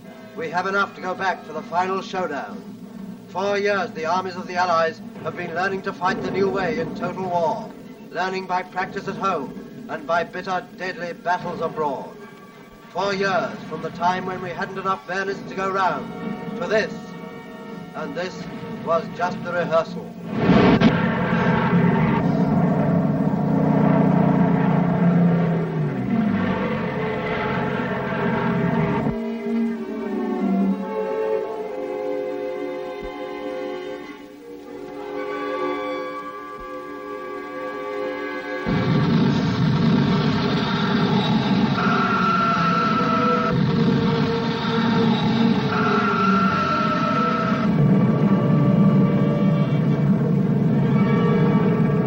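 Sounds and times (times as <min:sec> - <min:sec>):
propeller aircraft engines droning: 0:00.0 - 0:20.3, 0:21.1 - 0:29.2
orchestral score: 0:00.0 - 0:52.0
rumble of battle noise: 0:02.3 - 0:29.2, 0:38.7 - 0:52.0.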